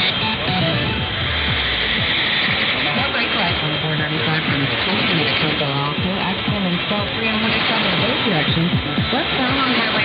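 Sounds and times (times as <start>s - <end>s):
tones sliding down in pitch: 0.0s - 3.0s
faint radio programme audio: 0.0s - 10.0s
radio static hiss: 0.0s - 10.0s.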